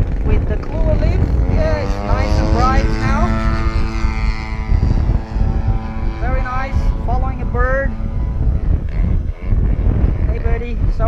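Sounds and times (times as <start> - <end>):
drone motors whining: 0.0 - 11.0
wind rumble on microphone: 0.0 - 11.0.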